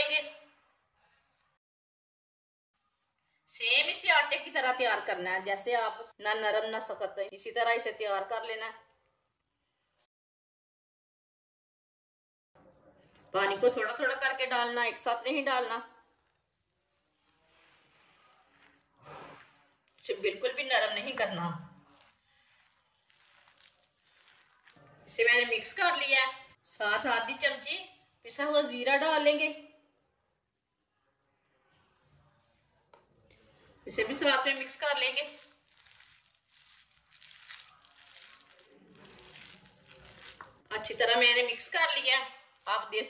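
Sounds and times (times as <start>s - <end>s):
hand mixing wet mixture in bowl: 15.8s - 25.8s, 33.1s - 43.0s.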